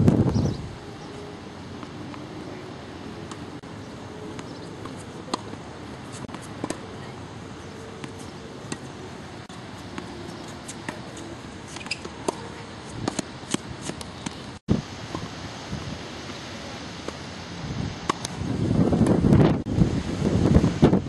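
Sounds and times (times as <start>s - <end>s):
steady background noise: 0.0s - 21.0s
tennis ball struck by rackets: 4.3s - 7.0s, 9.8s - 14.5s, 18.0s - 18.4s
tennis ball bouncing on hard court: 4.3s - 7.1s, 9.8s - 14.5s.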